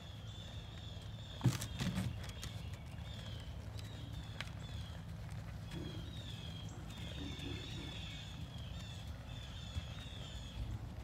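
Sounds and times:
hooves stepping on soft dirt: 0.0 - 11.0.

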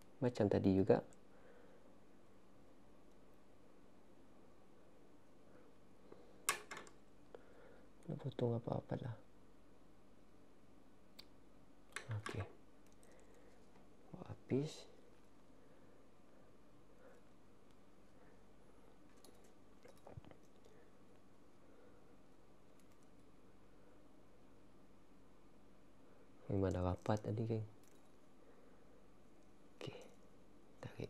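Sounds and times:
faint small clicks: 11.1 - 13.5, 19.1 - 20.8, 22.7 - 23.3, 27.0 - 28.2.

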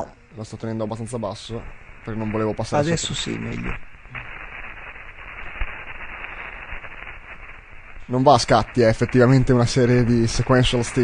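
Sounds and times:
steady hiss with fine crackling: 0.0 - 11.0.

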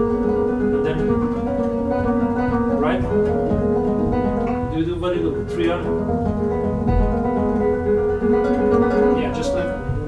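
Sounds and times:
classical guitar playing: 0.0 - 10.0.

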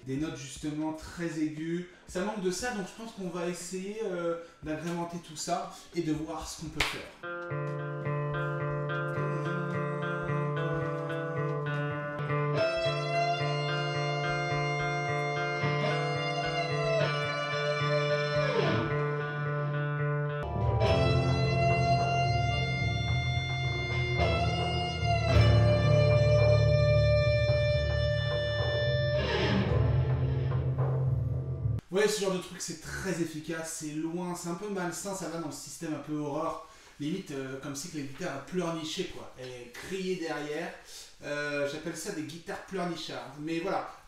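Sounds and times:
electric guitar lead with bends: 7.2 - 31.8
backing track with low bass: 7.5 - 31.8.

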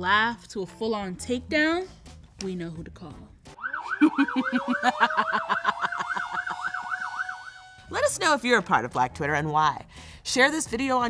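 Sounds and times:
siren warbling yelp: 3.6 - 7.9.

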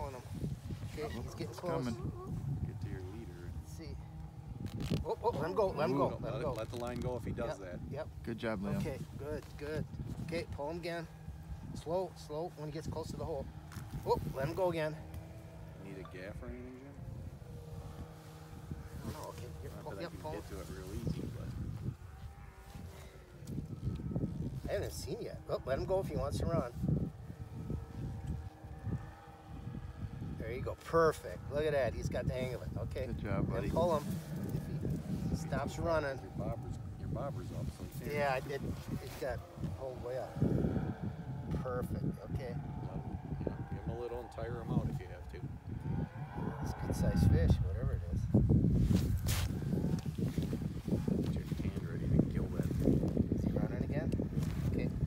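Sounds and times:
wind rumbling on microphone: 0.0 - 55.0.

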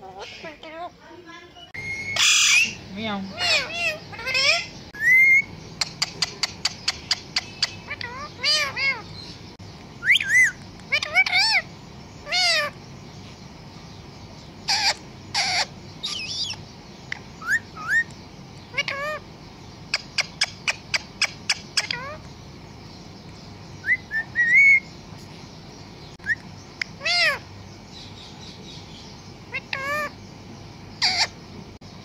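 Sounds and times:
parrot whistling: 1.8 - 2.8, 3.4 - 6.4, 10.0 - 11.6, 17.4 - 18.1, 23.8 - 24.9.

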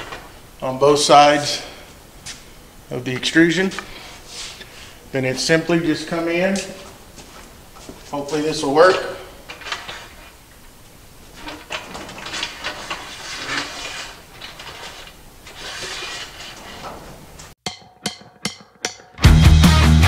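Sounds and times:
metal scraping: 8.2 - 10.4, 11.3 - 19.1.

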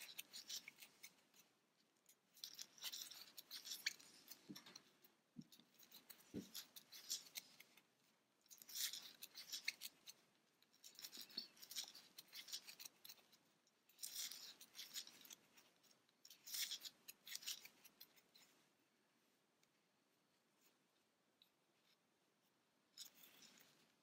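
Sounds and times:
crochet hook pulling yarn: 0.0 - 18.7, 21.4 - 24.0.

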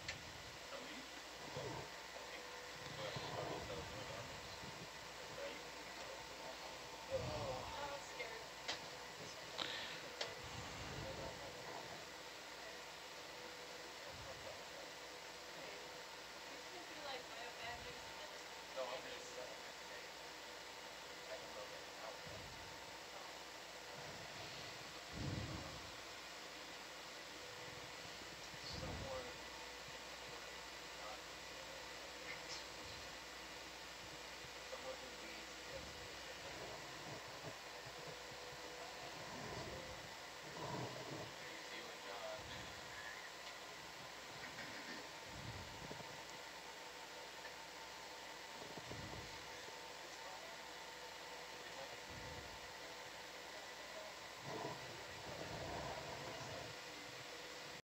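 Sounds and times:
audio feed hiss: 0.0 - 57.8
faint electronic hum: 0.0 - 57.8.

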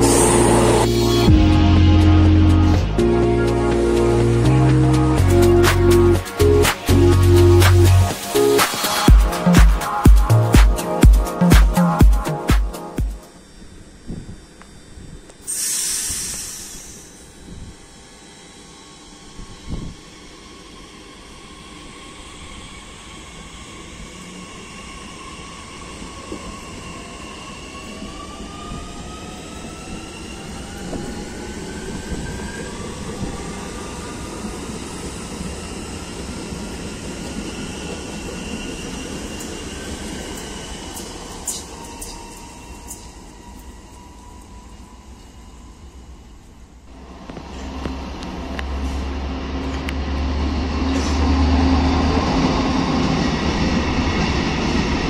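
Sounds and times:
wheels rumbling on rail: 0.0 - 9.1, 13.3 - 55.0
air hiss: 15.4 - 17.4.

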